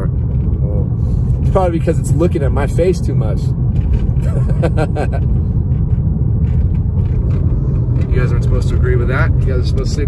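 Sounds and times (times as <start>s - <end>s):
car road and engine noise: 0.0s - 10.0s
man laughing: 4.2s - 5.3s.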